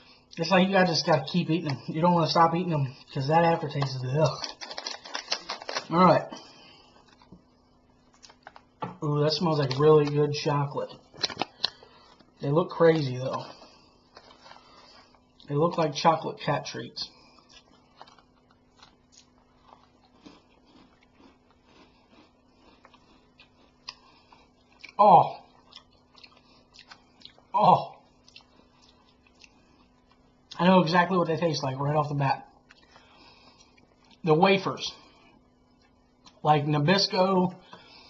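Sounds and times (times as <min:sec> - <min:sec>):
plastic snack bag crinkling: 0:03.1 - 0:07.4, 0:08.1 - 0:16.0, 0:17.4 - 0:23.2.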